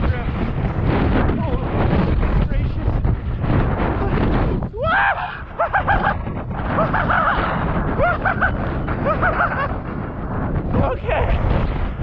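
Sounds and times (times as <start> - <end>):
wind on microphone: 0.0 - 12.0
person whooping: 4.7 - 6.2.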